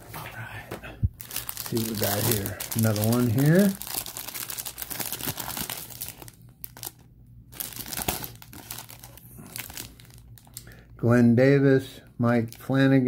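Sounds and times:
plastic wrapper crinkling and tearing: 0:01.2 - 0:10.8, 0:12.4 - 0:12.8.

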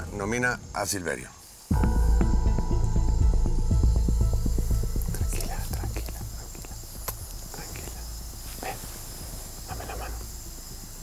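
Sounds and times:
faint high hiss: 0:00.0 - 0:11.0
low background music: 0:01.7 - 0:11.0.

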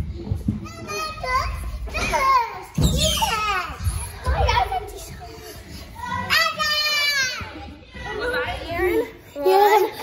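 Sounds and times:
children squealing and shouting: 0:00.9 - 0:07.6.

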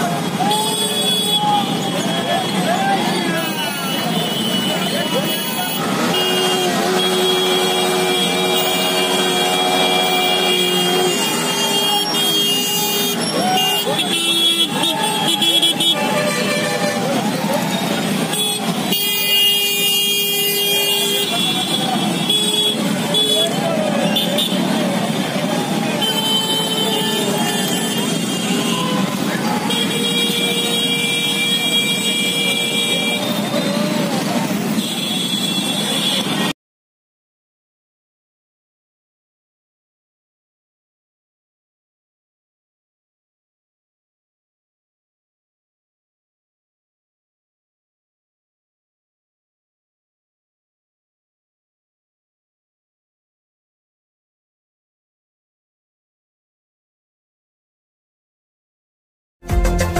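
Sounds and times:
crowd shouting: 0:00.0 - 0:36.5
motorcycle engines: 0:00.0 - 0:36.5
horn blast: 0:03.8 - 0:36.4
motorcycle engines running: 0:04.0 - 0:12.1.

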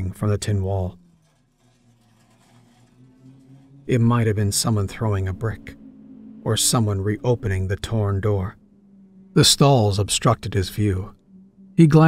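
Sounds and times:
faint low drone: 0:00.0 - 0:12.0.

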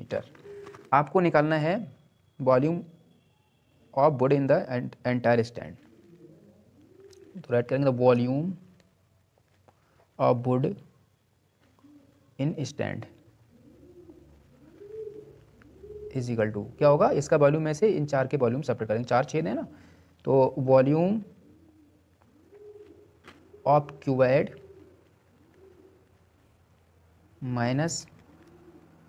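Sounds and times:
pigeon cooing: 0:00.0 - 0:01.0, 0:05.8 - 0:07.8, 0:11.6 - 0:12.4, 0:13.1 - 0:17.6, 0:19.2 - 0:26.5, 0:27.2 - 0:29.0.

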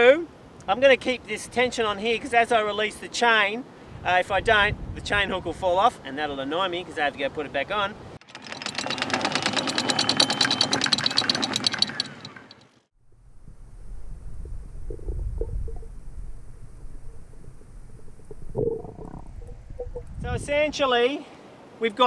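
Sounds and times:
anchor chain rattling: 0:08.2 - 0:12.9
muffled underwater rumble: 0:13.0 - 0:20.4.

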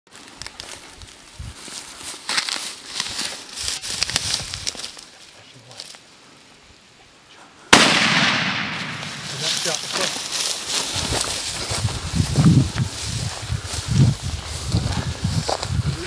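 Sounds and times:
footsteps on dry grass and brush: 0:00.1 - 0:06.1, 0:08.5 - 0:16.0
loud rifle shot: 0:07.7 - 0:09.5.

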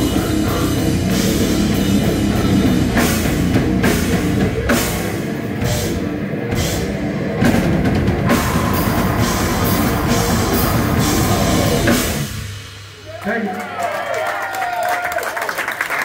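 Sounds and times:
death metal band playing live: 0:00.0 - 0:13.1.

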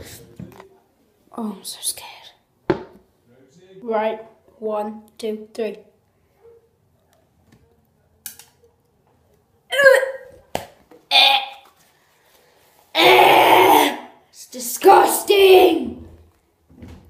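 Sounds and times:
boy gagging: 0:09.7 - 0:10.3, 0:13.0 - 0:14.1.

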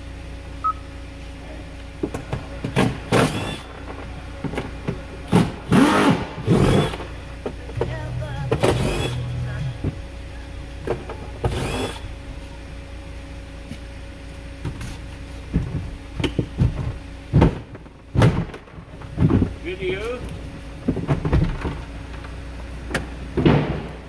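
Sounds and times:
car stereo audio bursts: 0:00.0 - 0:16.6
steady low hum: 0:00.0 - 0:24.0.

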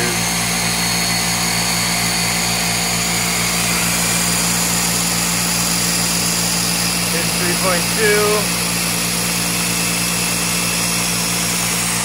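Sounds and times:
generators humming: 0:00.0 - 0:12.0
high whine of gears: 0:00.0 - 0:12.0.

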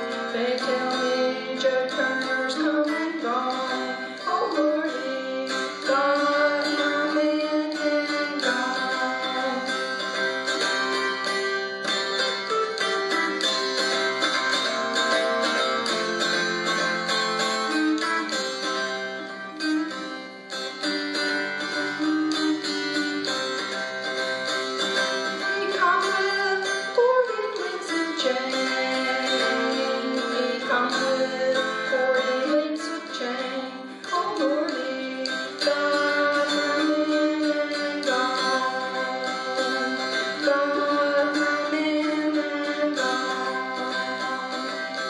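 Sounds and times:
plucked dulcimer blues melody: 0:00.0 - 0:45.0.

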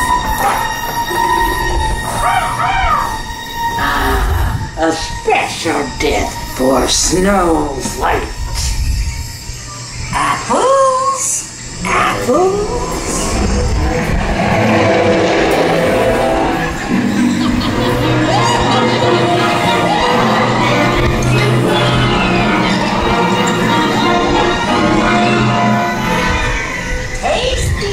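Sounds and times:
eerie soundtrack music: 0:00.0 - 0:27.9
rising and falling cries: 0:00.0 - 0:27.9
loud low rumbling: 0:11.6 - 0:27.8.

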